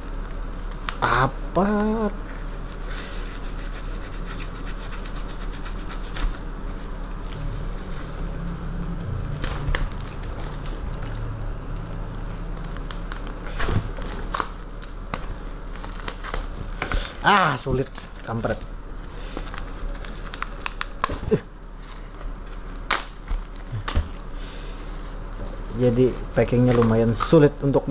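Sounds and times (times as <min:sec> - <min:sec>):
packaging crinkles and clicks: 0:00.0 - 0:03.2, 0:07.2 - 0:27.5
knife scraping plastic packaging: 0:00.0 - 0:11.2
steady low hum: 0:00.0 - 0:27.9.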